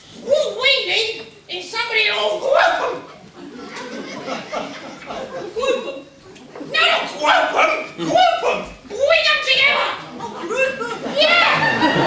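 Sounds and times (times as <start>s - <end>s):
clamour of many voices: 0.0s - 12.0s
children calling out: 0.2s - 3.2s, 5.5s - 12.0s
people speaking: 0.2s - 3.2s, 5.1s - 12.0s.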